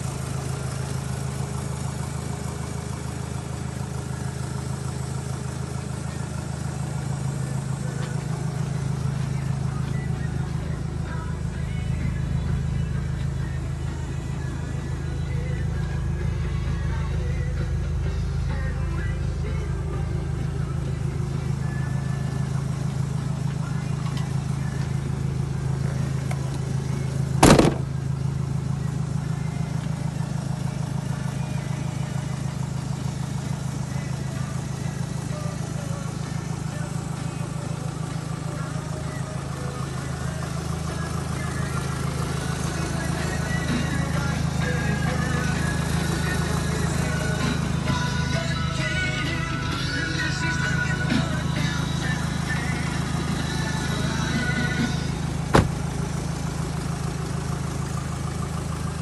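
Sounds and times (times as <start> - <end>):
diesel engine idling: 0.0 - 59.0
music: 6.0 - 55.9
sharp thump: 27.4 - 27.9, 55.5 - 55.8.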